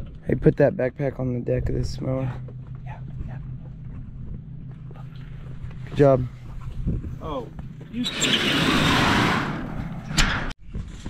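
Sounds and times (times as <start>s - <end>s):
engine idling hum: 0.0s - 8.0s.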